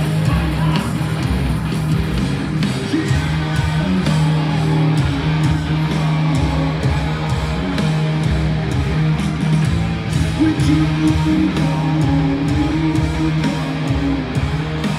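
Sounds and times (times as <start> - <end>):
electric bass guitar: 0.0 - 14.9.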